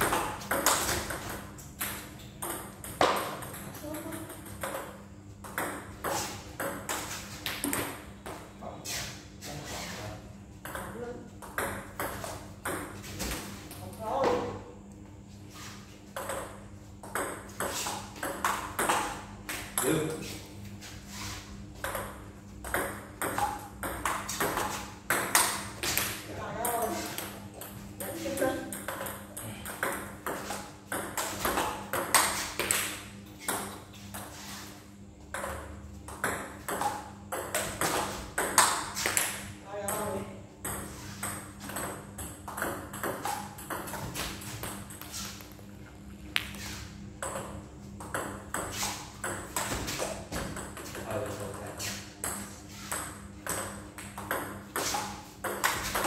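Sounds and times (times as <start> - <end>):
ball bouncing on table: 0.0 - 8.4, 10.6 - 13.4, 16.2 - 20.0, 21.8 - 34.3, 35.3 - 45.6, 46.4 - 46.6, 47.2 - 51.0, 52.2 - 56.0
table tennis ball on paddles: 0.0 - 8.5, 10.6 - 14.6, 16.1 - 20.1, 21.8 - 34.5, 35.3 - 45.7, 46.3 - 56.0.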